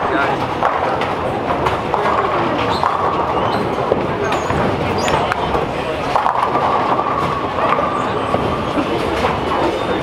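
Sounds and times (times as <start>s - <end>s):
balls and pins clattering: 0.0s - 10.0s
bowling balls rolling: 0.0s - 10.0s.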